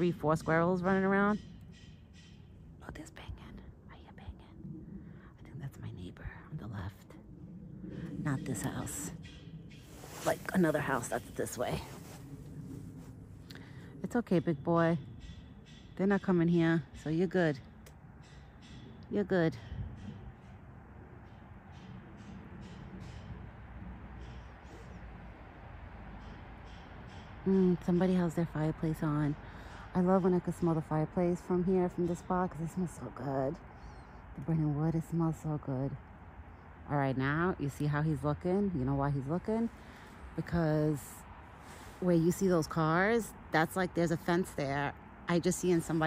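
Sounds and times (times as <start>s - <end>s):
low steady rumble: 0.0s - 46.0s
faint whispery voice: 2.9s - 7.2s
soft rustling: 9.8s - 13.4s.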